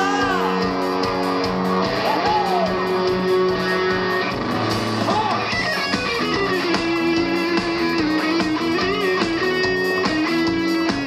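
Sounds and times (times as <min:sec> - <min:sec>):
guitar notes bending: 0:00.0 - 0:11.0
steady drum beat: 0:00.0 - 0:11.0
strummed electric guitar: 0:00.0 - 0:11.0.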